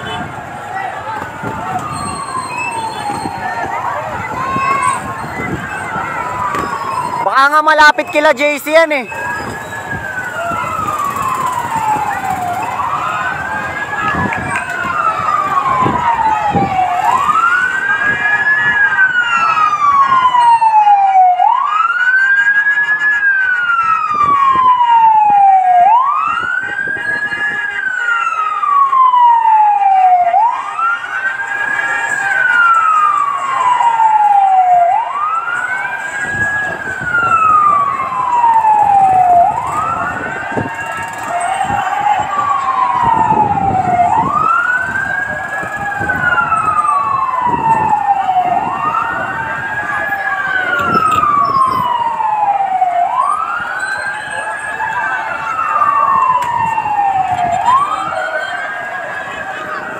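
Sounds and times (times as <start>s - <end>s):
fainter second siren: 0.0s - 59.9s
fire truck siren wailing: 0.0s - 59.9s.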